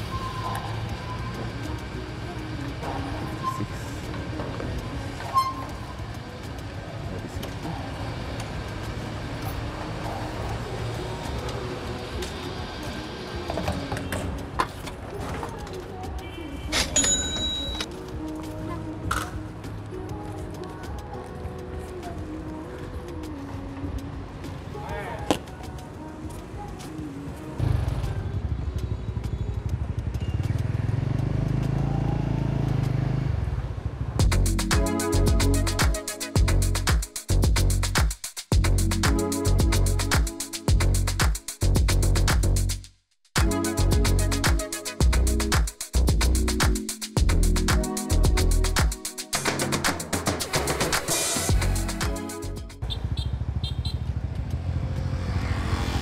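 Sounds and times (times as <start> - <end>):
background music: 0.0 - 33.4, 34.2 - 42.8, 43.4 - 52.8
motorbike engine: 27.6 - 34.2, 52.8 - 56.0.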